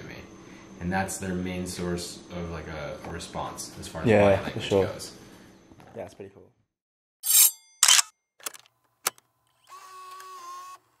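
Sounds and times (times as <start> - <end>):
sharp click: 7.3 - 9.2.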